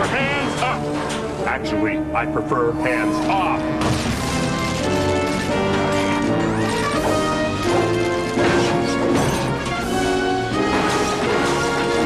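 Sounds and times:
dramatic cartoon action music: 0:00.0 - 0:12.0
crashing impact sound effects: 0:03.8 - 0:05.0.

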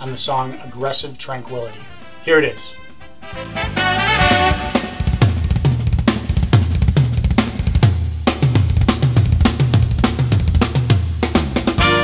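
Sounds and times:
fast drum solo: 0:03.4 - 0:12.0.

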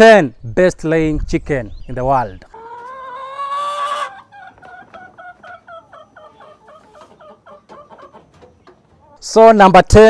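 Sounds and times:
chickens clucking: 0:01.9 - 0:09.7.

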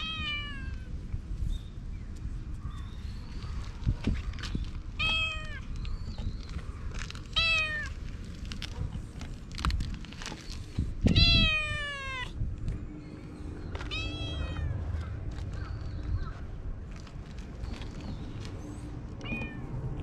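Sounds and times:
cat meowing: 0:00.0 - 0:00.9, 0:05.0 - 0:05.7, 0:07.4 - 0:07.9, 0:11.1 - 0:12.4, 0:13.9 - 0:14.9.

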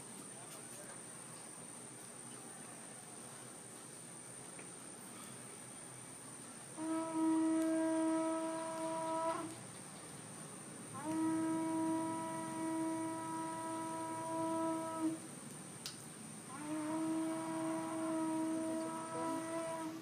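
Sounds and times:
horn long held notes: 0:06.8 - 0:09.6, 0:10.9 - 0:15.3, 0:16.5 - 0:20.0.

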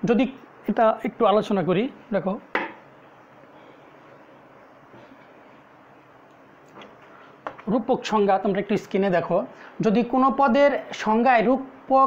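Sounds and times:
man speaking: 0:00.0 - 0:02.5, 0:07.6 - 0:12.0.

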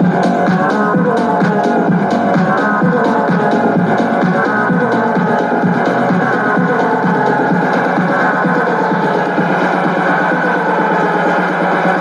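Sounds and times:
techno house music: 0:00.0 - 0:12.0.

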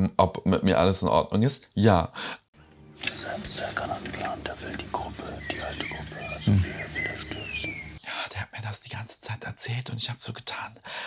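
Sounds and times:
men whispering: 0:03.0 - 0:10.8.

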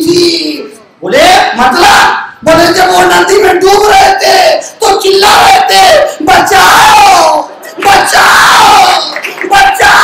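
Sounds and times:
man shouting long calls: 0:03.9 - 0:10.0.

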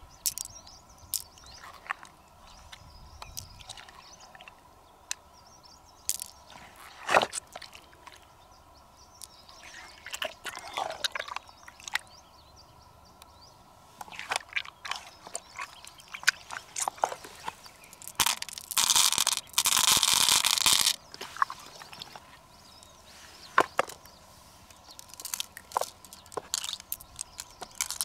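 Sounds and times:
beads rattling into a shell: 0:00.2 - 0:00.5, 0:06.1 - 0:06.4, 0:17.9 - 0:21.0, 0:24.9 - 0:28.0
light clicks of beads and shells: 0:00.2 - 0:02.1, 0:06.1 - 0:06.4, 0:17.9 - 0:21.0, 0:24.7 - 0:28.0.

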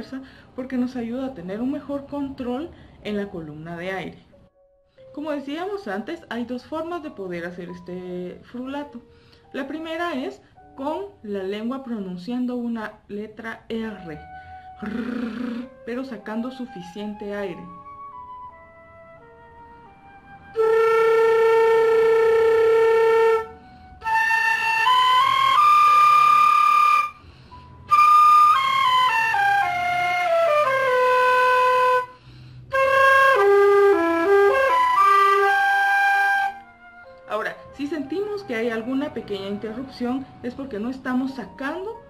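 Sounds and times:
flute flutter-tonguing: 0:14.5 - 0:15.9, 0:20.0 - 0:27.2, 0:27.8 - 0:37.2.

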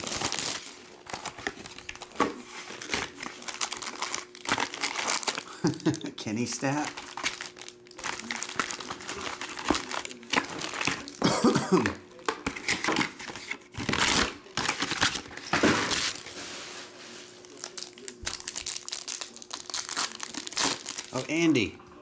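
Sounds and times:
foil wrappers crinkling and tearing: 0:00.0 - 0:21.7
person coughing: 0:11.1 - 0:12.0.

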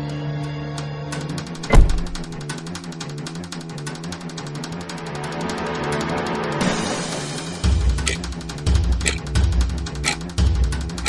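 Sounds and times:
bin lid slamming shut: 0:01.6 - 0:02.4
music with fast ticking beat: 0:07.9 - 0:09.4.

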